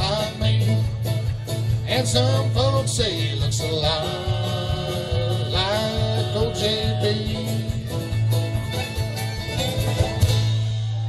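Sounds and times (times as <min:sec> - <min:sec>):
bluegrass band playing: 0:00.0 - 0:11.0.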